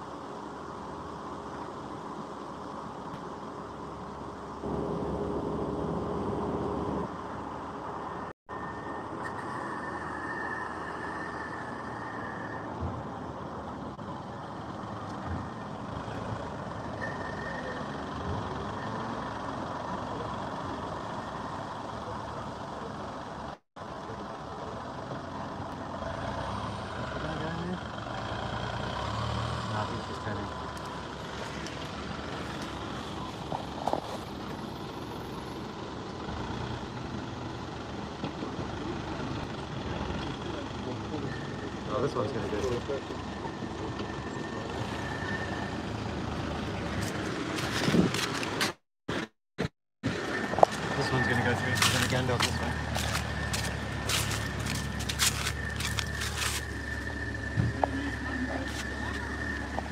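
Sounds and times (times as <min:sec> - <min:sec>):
suv engine idling: 0:00.0 - 0:28.9, 0:29.7 - 0:47.6, 0:50.2 - 0:59.9
street traffic noise: 0:00.0 - 0:59.9.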